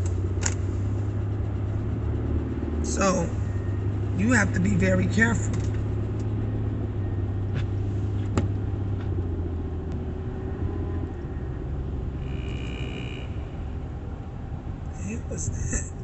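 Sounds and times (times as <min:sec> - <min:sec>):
car engine and road rumble: 0:00.0 - 0:16.0.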